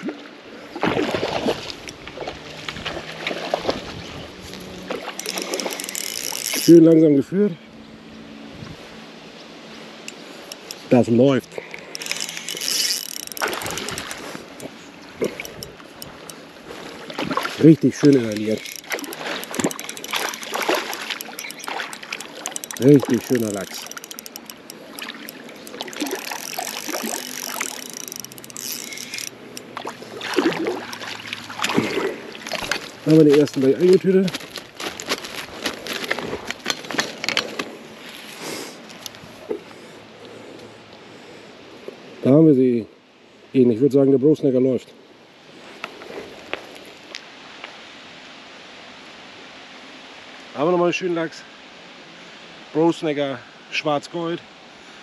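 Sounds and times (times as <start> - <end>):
fishing reel clicking: 5.0 - 7.0, 10.1 - 16.4, 17.8 - 29.8, 38.9 - 39.2
light splashing: 11.5 - 37.1
rustling: 32.5 - 39.4.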